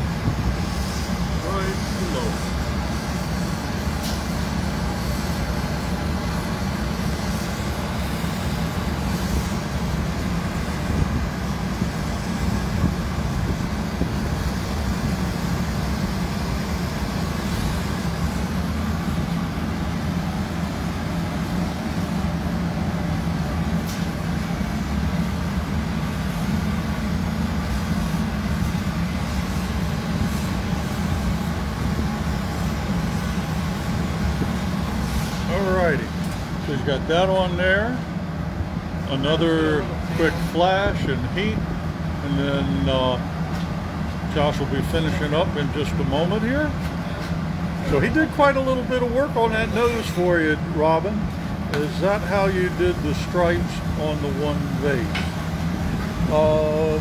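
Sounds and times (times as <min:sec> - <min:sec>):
gas burners and blowers roaring: 0:00.0 - 0:57.0
gas torch flame: 0:00.0 - 0:57.0.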